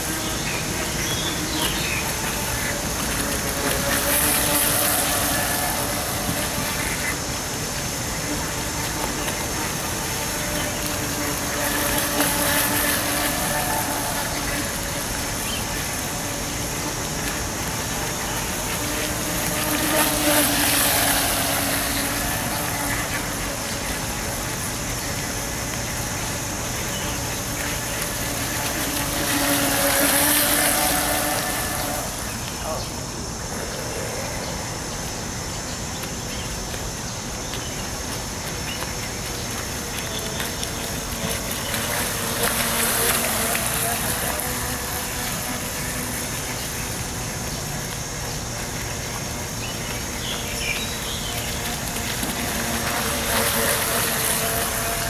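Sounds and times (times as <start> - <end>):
model boat motor whining: 0.0 - 55.0.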